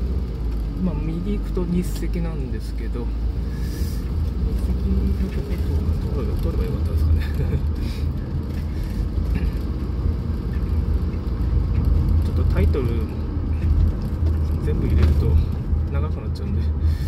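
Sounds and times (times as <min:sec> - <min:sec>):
car engine and tyre rumble: 0:00.0 - 0:17.0.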